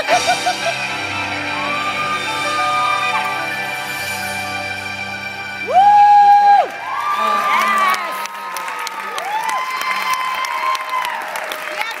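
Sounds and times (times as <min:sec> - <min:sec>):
audience applauding and cheering: 0:00.0 - 0:12.0
high whoops and screams: 0:05.6 - 0:11.6.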